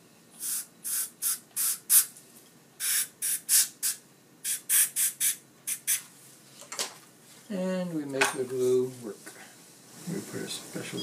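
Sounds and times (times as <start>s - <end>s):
air-water syringe hissing bursts: 0.4s - 2.1s, 2.8s - 6.1s.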